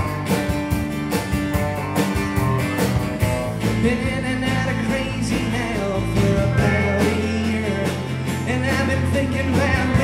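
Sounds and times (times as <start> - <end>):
bass guitar: 0.0 - 10.0
drums keeping a steady beat: 0.0 - 10.0
electric lead guitar: 0.0 - 10.0
strummed acoustic guitar: 0.0 - 10.0
lead vocal singing: 3.7 - 10.0.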